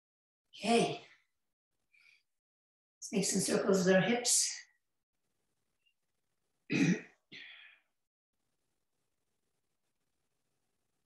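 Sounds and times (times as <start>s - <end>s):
person clearing throat: 6.7s - 7.2s.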